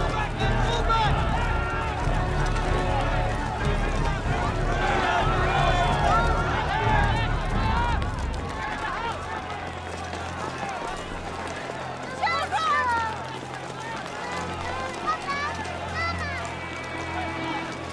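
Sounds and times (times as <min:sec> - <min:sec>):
crowd running: 0:00.0 - 0:17.9
crowd shouting: 0:00.0 - 0:17.9.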